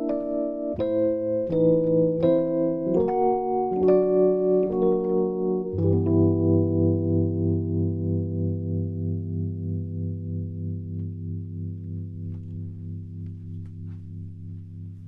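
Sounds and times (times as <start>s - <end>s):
keyboard chord ringing: 0.0s - 15.0s.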